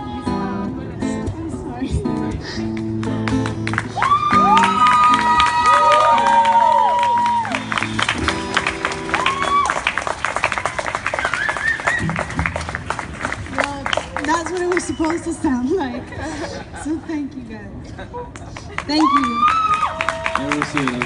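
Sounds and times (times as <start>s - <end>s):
acoustic guitar chords: 0.0s - 5.5s, 7.1s - 9.6s
crowd applauding and cheering: 3.0s - 15.2s, 18.7s - 21.0s
high whoops: 3.9s - 8.0s, 9.1s - 10.0s, 11.1s - 12.2s, 18.9s - 20.6s.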